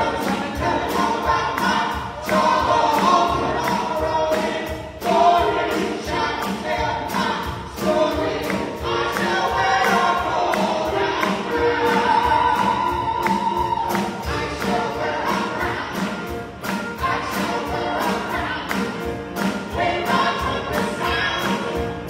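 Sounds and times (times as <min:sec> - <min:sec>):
drum kit steady beat: 0:00.0 - 0:22.0
gospel voices singing together: 0:00.0 - 0:22.0
live band: 0:00.0 - 0:22.0.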